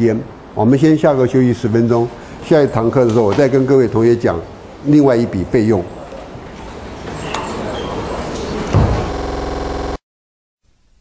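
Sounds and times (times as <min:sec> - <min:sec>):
steady electrical buzz: 0:08.6 - 0:10.0
loud low thump: 0:08.7 - 0:09.2.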